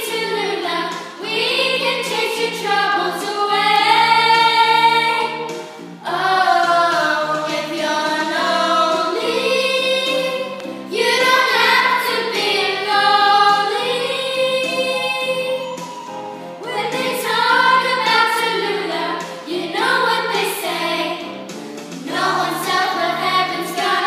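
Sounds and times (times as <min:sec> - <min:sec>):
children singing: 0:00.0 - 0:24.0.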